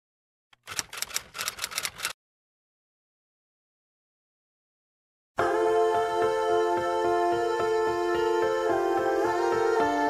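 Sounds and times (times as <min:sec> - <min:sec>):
typewriter-like clicks: 0:00.6 - 0:02.2.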